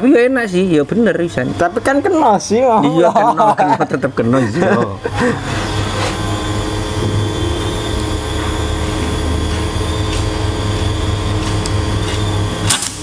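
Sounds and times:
mechanical drone with low hum: 0:00.0 - 0:13.0.

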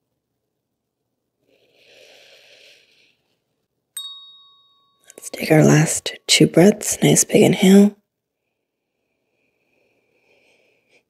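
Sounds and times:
small bell chime: 0:04.0 - 0:06.3.

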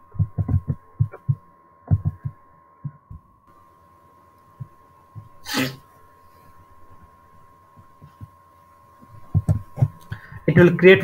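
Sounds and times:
faint steady whine: 0:00.0 - 0:11.0
person sneezing: 0:05.4 - 0:05.9.

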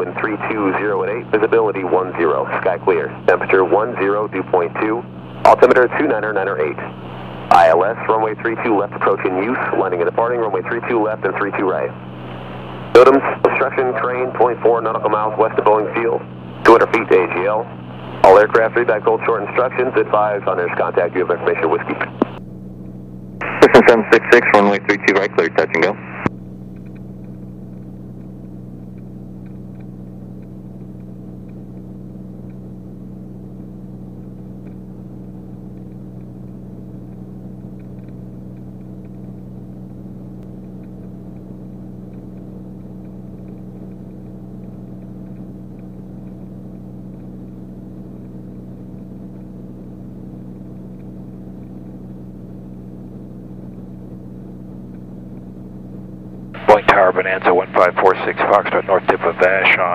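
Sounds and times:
propeller plane engine droning: 0:00.0 - 0:59.9.

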